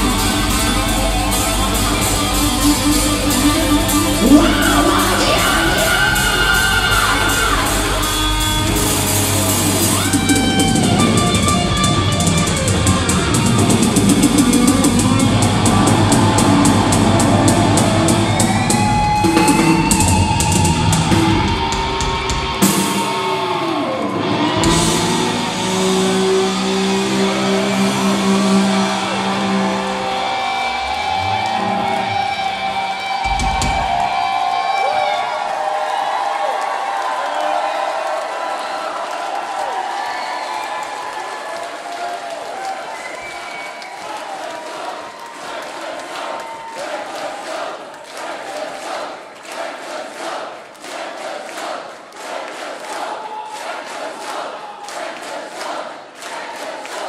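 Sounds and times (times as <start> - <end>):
rhythmic clapping: 0.0 - 21.2, 40.6 - 57.0
rock band final chord: 0.0 - 34.2
crowd cheering: 0.0 - 57.0.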